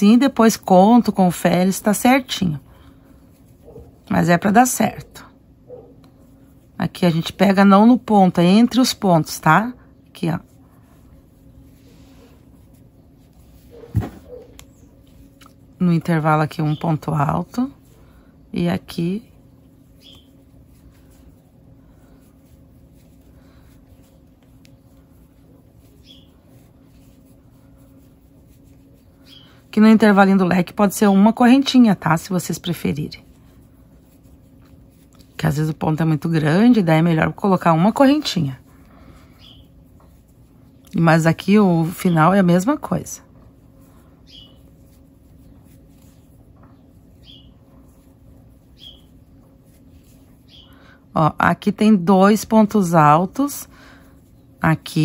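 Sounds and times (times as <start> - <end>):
steady low hum: 0.0 - 55.0
bird chirping: 19.9 - 20.4, 26.0 - 26.4, 39.4 - 39.8, 44.2 - 44.7, 46.6 - 47.6, 48.7 - 49.2, 50.4 - 50.8
crochet hook scratching: 44.3 - 50.6.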